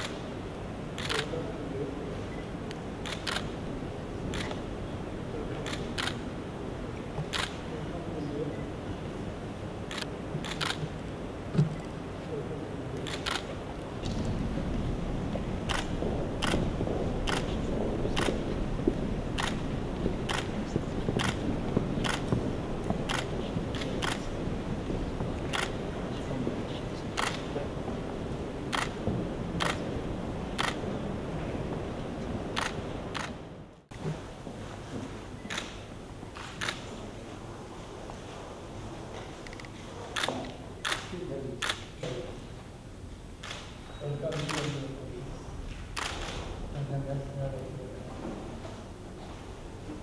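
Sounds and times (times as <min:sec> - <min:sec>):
camera shutters clicking: 0:01.0 - 0:01.3, 0:03.0 - 0:03.5, 0:04.3 - 0:04.6, 0:05.7 - 0:06.2, 0:07.3 - 0:07.6, 0:09.9 - 0:10.9, 0:13.0 - 0:14.3, 0:15.7 - 0:16.6, 0:25.4 - 0:25.8, 0:27.2 - 0:27.5, 0:28.7 - 0:29.0, 0:29.6 - 0:29.8, 0:32.6 - 0:33.4, 0:36.4 - 0:36.8, 0:39.5 - 0:41.9, 0:43.4 - 0:44.9, 0:46.0 - 0:46.5.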